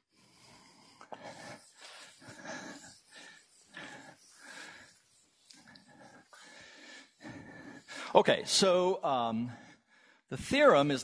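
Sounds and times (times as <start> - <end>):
marker squeaking on whiteboard: 1.1 - 8.6.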